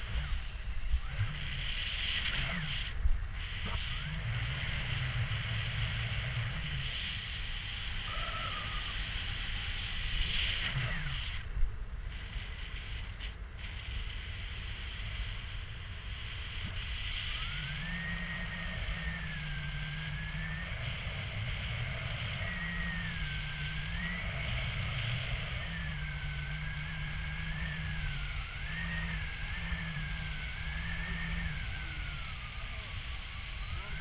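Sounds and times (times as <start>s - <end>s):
thin wavering whistle: 17.0s - 34.0s.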